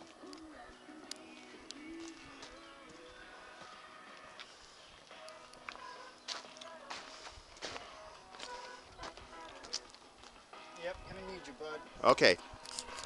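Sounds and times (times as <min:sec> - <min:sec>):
footsteps: 0:00.0 - 0:11.1.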